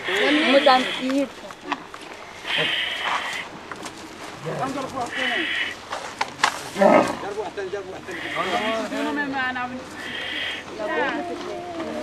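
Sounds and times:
camel calling: 0.0s - 1.3s, 2.4s - 3.5s, 4.4s - 5.8s, 8.1s - 9.2s, 10.0s - 12.0s.

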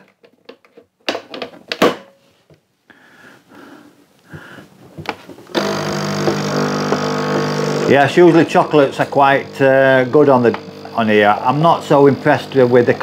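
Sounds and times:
coffee machine pump buzzing: 5.5s - 13.0s.

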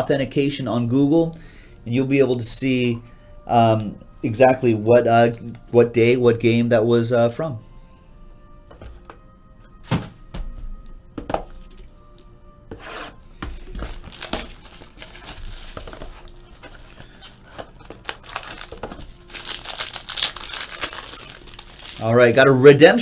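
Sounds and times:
faint background music: 0.0s - 23.0s
plastic shrink-wrap crinkling and tearing: 13.8s - 22.6s.

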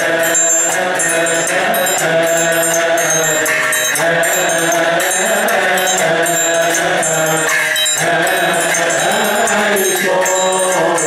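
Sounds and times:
chanting in unison: 0.0s - 11.0s
hand triangle ringing: 0.0s - 11.0s.

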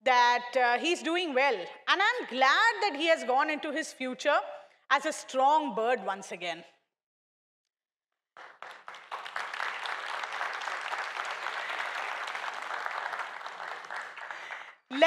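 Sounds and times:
audience applauding: 8.4s - 14.9s.

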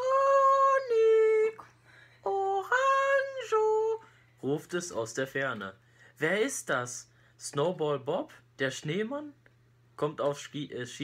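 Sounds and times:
person singing long held notes: 0.0s - 4.1s.

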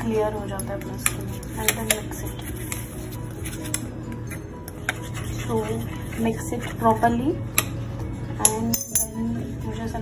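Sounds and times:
metal spoon stirring paste: 0.0s - 7.8s.

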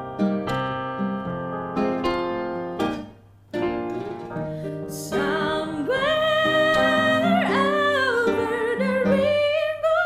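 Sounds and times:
acoustic guitar: 0.0s - 10.0s
piano: 0.0s - 10.0s.

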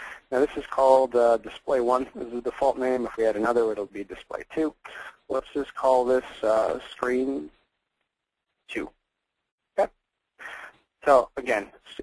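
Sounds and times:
breathy noise: 0.0s - 0.3s, 4.8s - 5.3s, 10.4s - 10.9s
person speaking: 0.0s - 7.6s, 8.6s - 9.0s, 9.8s - 12.0s.

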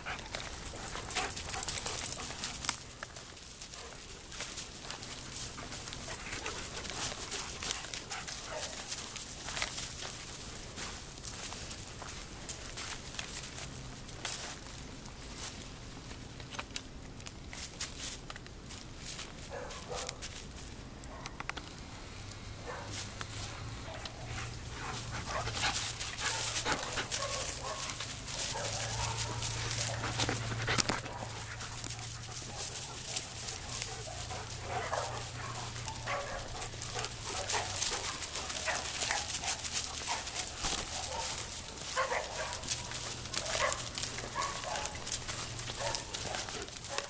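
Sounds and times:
footsteps crunching dry leaves: 0.0s - 21.0s, 21.7s - 47.0s.

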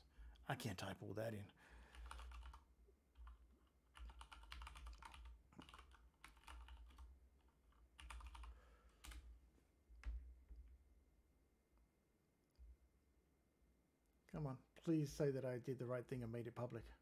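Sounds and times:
typing on computer keyboard: 1.9s - 9.3s.

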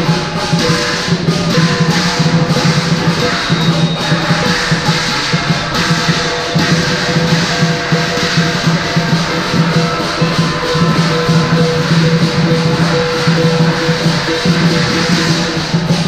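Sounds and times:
big drum beating fast: 0.0s - 16.0s
cymbals clashing: 0.0s - 16.0s
gong ringing: 0.0s - 16.0s.

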